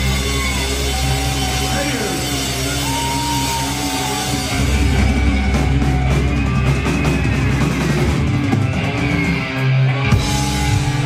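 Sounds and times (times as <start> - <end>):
drum kit: 0.0 - 11.0
electric guitars playing chords: 0.0 - 11.0.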